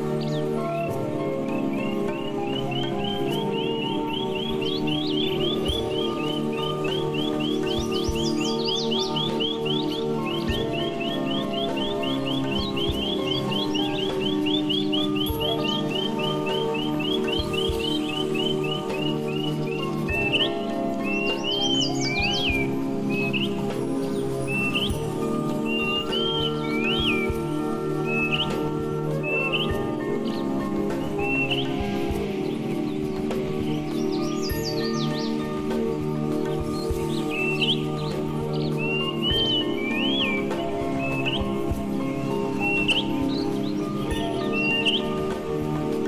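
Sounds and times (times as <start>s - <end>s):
birds chirping: 0.0s - 46.0s
calm ambient music: 0.0s - 46.0s.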